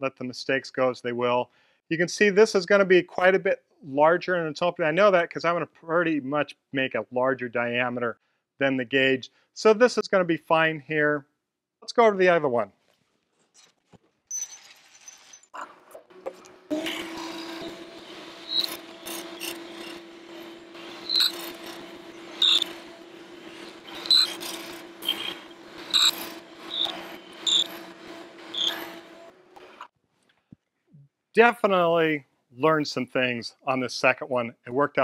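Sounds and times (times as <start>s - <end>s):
milling machine cutting wood: 16.1s - 29.9s.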